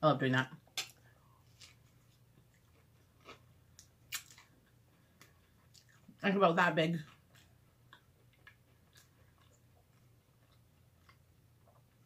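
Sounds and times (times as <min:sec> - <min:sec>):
person chewing bread: 0:00.6 - 0:06.2, 0:07.0 - 0:12.0.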